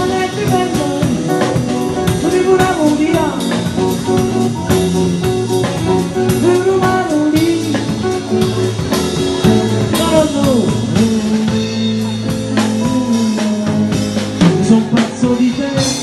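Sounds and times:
drum kit with cymbal strikes: 0:00.0 - 0:16.0
electric bass: 0:00.0 - 0:16.0
sliding lead melody: 0:00.0 - 0:16.0.

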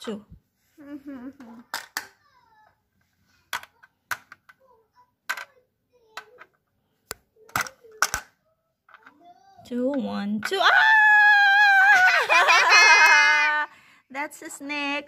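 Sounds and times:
plastic pieces clicking on board: 0:07.5 - 0:08.3.

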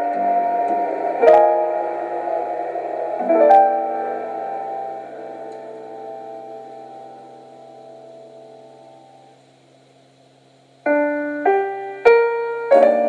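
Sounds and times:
piano chords ringing: 0:00.0 - 0:09.4, 0:10.8 - 0:13.0.

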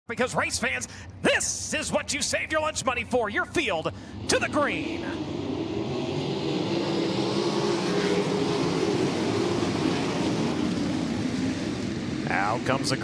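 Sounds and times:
many race car engines droning: 0:02.3 - 0:13.0.

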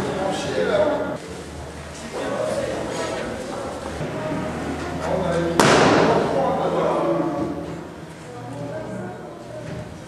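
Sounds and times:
people talking: 0:00.0 - 0:10.0
balloon bursting: 0:05.6 - 0:06.2.

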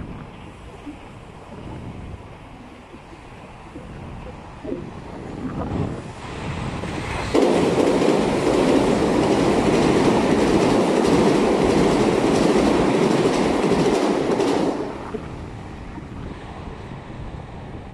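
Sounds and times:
electric train passing: 0:00.0 - 0:17.9.

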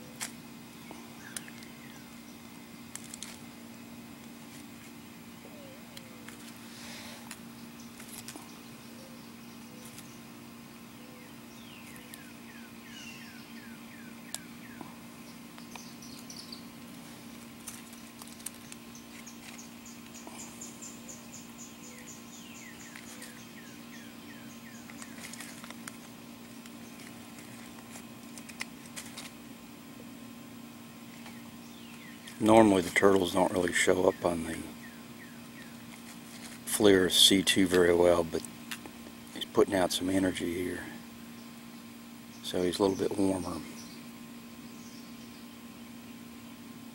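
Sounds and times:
distant birds singing: 0:00.0 - 0:46.9
steady low hum: 0:00.0 - 0:46.9.

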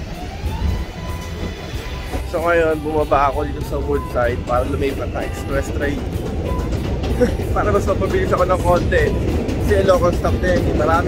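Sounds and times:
train low rumble: 0:00.0 - 0:11.0.

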